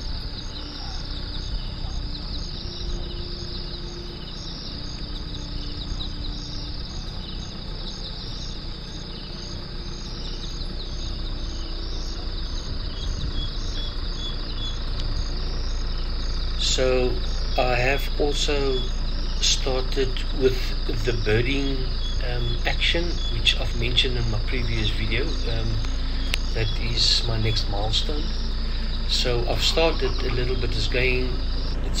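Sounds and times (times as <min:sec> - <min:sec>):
pulsing insect chorus: 0:00.0 - 0:32.0
vehicle engine and tyres rumble: 0:00.0 - 0:32.0.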